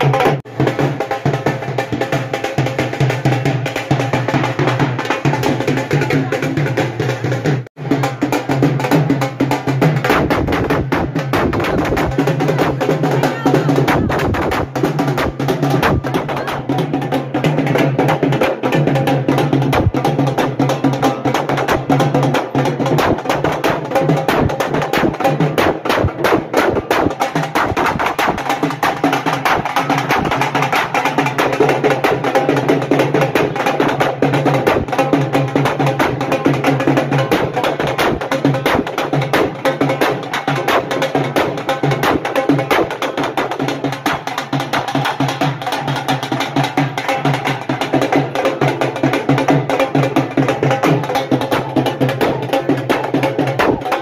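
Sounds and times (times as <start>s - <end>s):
fast continuous drumming: 0.0s - 54.0s
music: 0.0s - 54.0s.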